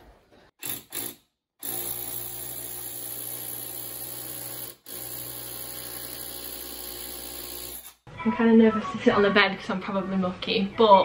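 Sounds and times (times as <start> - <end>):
electric drill boring into wall: 0.6 - 8.0.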